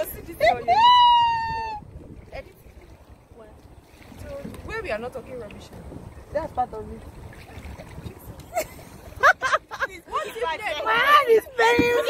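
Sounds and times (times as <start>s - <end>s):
people chattering: 9.7s - 12.0s.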